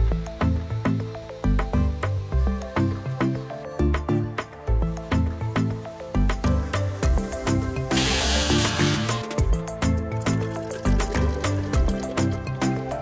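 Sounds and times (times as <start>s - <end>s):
music with steady beat: 0.0s - 13.0s
water spraying from hose nozzle: 5.0s - 9.3s.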